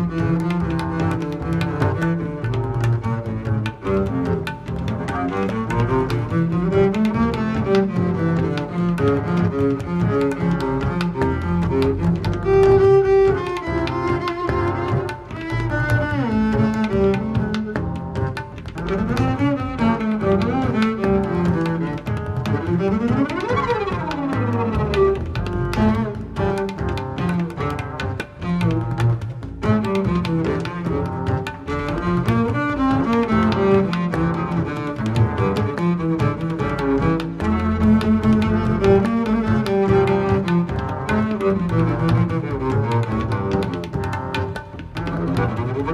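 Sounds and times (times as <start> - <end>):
jazz double bass: 0.0 - 45.9
sharp ticks: 0.0 - 45.9.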